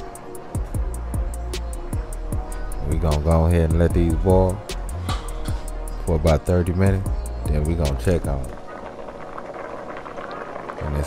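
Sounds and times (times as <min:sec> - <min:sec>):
water boiling and bubbling: 0:08.3 - 0:11.0.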